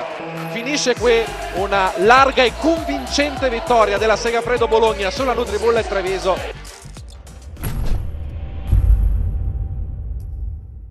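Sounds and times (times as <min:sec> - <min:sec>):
deep rumble swelling into a boom: 0:07.5 - 0:10.9.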